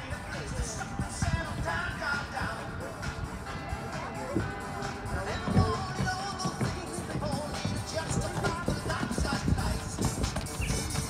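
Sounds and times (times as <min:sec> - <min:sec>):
background music with melody: 0:00.0 - 0:11.0
horse hoofbeats on sand: 0:03.8 - 0:11.0.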